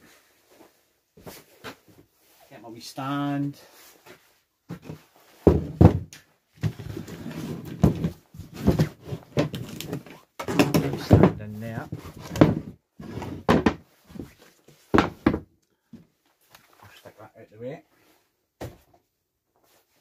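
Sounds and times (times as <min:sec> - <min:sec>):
wooden boards knocking on workbench: 0:05.4 - 0:06.1, 0:10.4 - 0:11.4, 0:13.4 - 0:13.8, 0:14.9 - 0:15.4.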